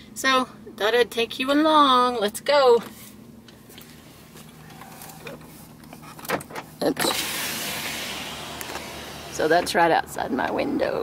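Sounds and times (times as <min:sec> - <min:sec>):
truck engine humming: 0:03.2 - 0:11.0.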